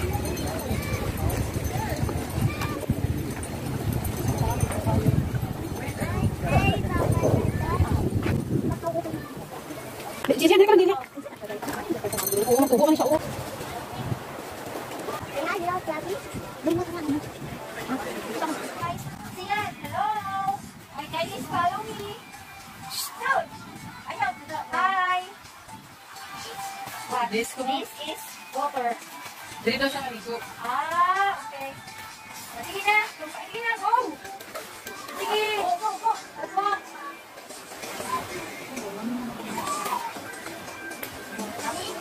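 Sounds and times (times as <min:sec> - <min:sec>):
wind rumble: 0:00.0 - 0:09.2
voices outdoors: 0:00.0 - 0:42.0.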